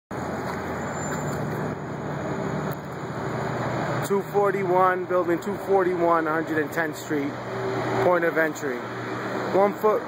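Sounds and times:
street traffic noise: 0:00.1 - 0:10.0.

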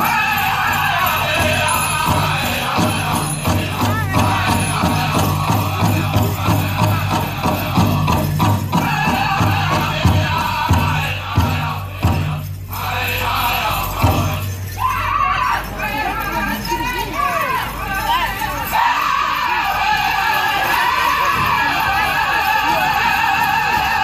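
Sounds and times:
big drum beating: 0:00.0 - 0:14.5
group singing: 0:00.0 - 0:16.4, 0:17.9 - 0:24.0.

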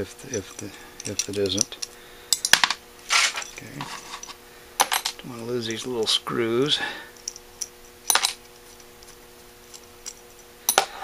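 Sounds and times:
metal clinks: 0:00.2 - 0:05.2
small metal parts clicking: 0:00.2 - 0:05.9, 0:07.2 - 0:09.1.

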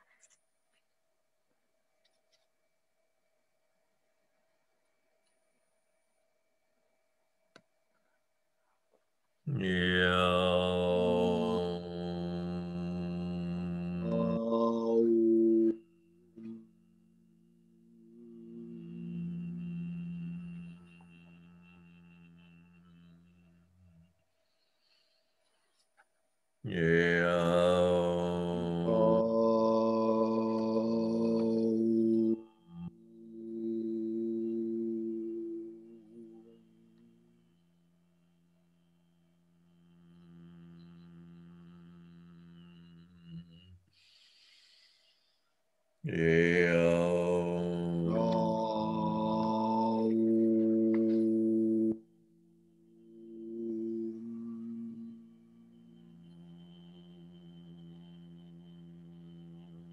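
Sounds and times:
person chanting om: 0:09.4 - 0:24.9, 0:26.6 - 0:45.4, 0:46.0 - 0:59.9.

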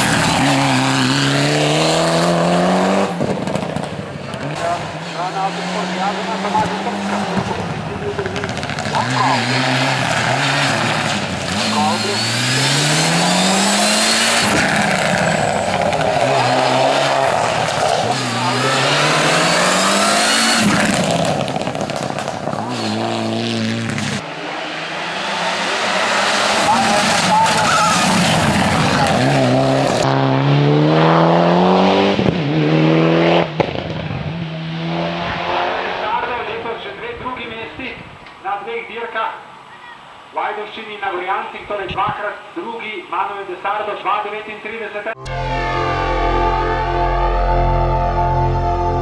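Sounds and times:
race car engines accelerating: 0:00.0 - 0:37.8.

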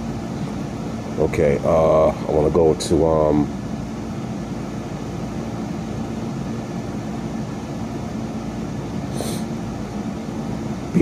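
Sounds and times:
fan humming with low drone: 0:00.0 - 0:11.0.

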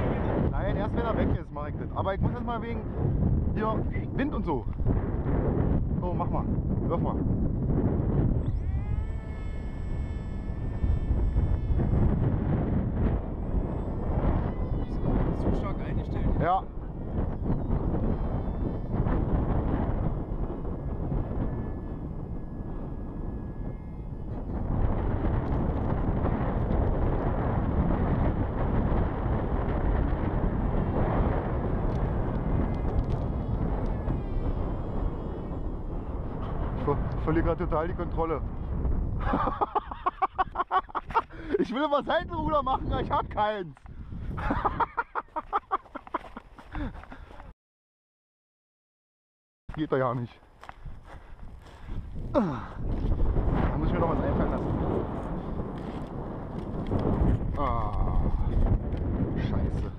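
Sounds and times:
wind rumble on microphone: 0:00.0 - 0:47.5, 0:49.7 - 0:59.9
electric motor whine: 0:07.4 - 0:38.6.

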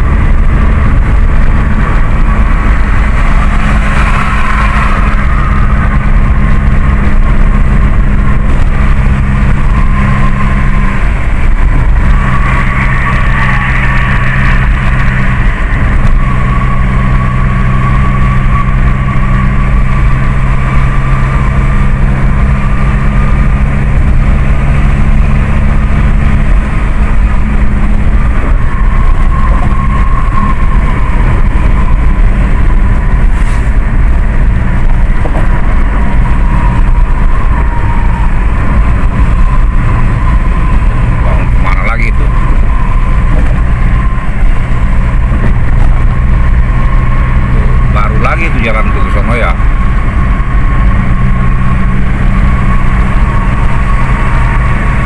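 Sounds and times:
car engine hum: 0:00.0 - 0:55.0
tyre and road rumble: 0:00.0 - 0:55.0.

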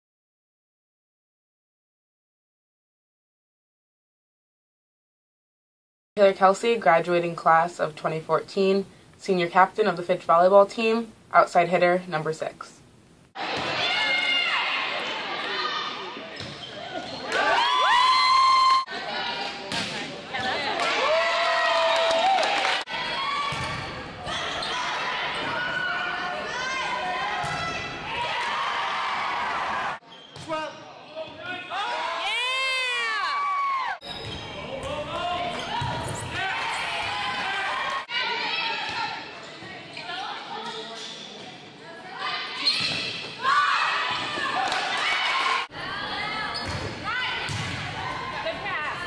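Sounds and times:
sneaker squeaks on hardwood: 0:16.3 - 0:17.3, 0:34.0 - 0:34.9, 0:35.5 - 0:36.4, 0:42.6 - 0:43.3, 0:46.5 - 0:47.6
volleyball being hit: 0:46.6 - 0:48.0.

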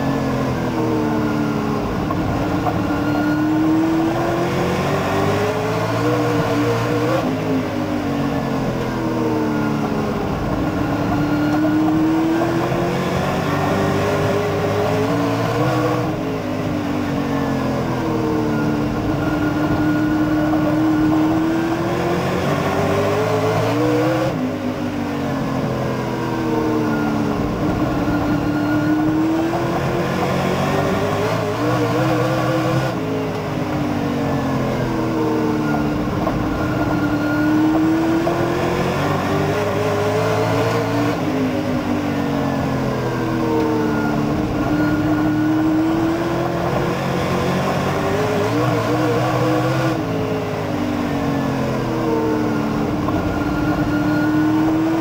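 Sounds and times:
race car engine revving: 0:00.0 - 0:08.0, 0:08.6 - 0:17.2, 0:17.8 - 0:24.4, 0:25.3 - 0:55.0.

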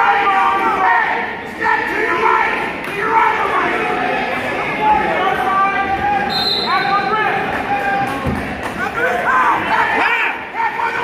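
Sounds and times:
spectators shouting: 0:00.0 - 0:11.0.

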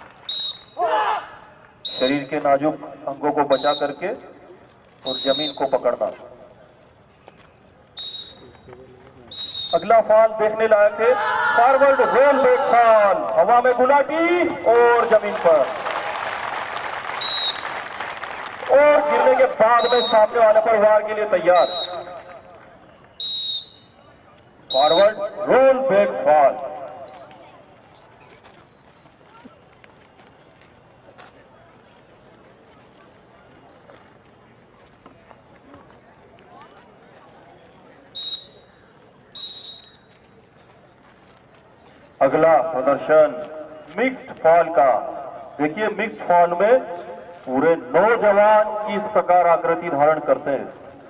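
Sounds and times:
shrill whistle blasts: 0:00.3 - 0:01.1, 0:01.8 - 0:02.4, 0:03.5 - 0:04.0, 0:05.1 - 0:05.8, 0:08.0 - 0:08.6, 0:09.3 - 0:09.9, 0:17.2 - 0:17.8, 0:19.8 - 0:20.4, 0:21.5 - 0:22.3, 0:23.1 - 0:24.0, 0:24.7 - 0:25.3, 0:38.2 - 0:40.1
audience applauding: 0:14.8 - 0:19.6.

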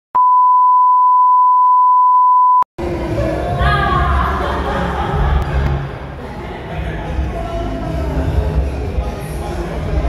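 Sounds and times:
steady test tone beep: 0:00.2 - 0:02.6.

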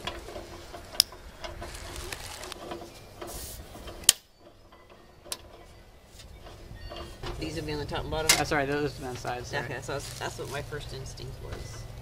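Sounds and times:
metal light fixtures clicking and knocking: 0:02.5 - 0:09.6.

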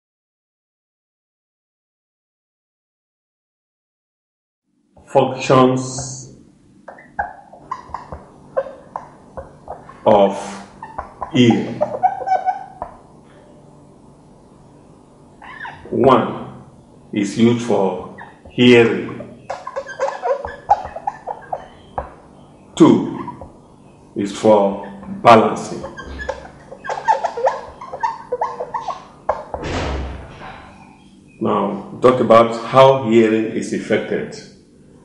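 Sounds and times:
marker squeaking on whiteboard: 0:05.0 - 0:06.2, 0:06.9 - 0:13.2, 0:15.4 - 0:16.0, 0:17.6 - 0:31.0
marker tap: 0:19.6 - 0:22.2.

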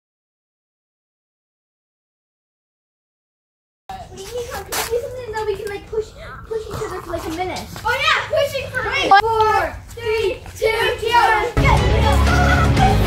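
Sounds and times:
boys shouting and yelling: 0:03.9 - 0:12.7.

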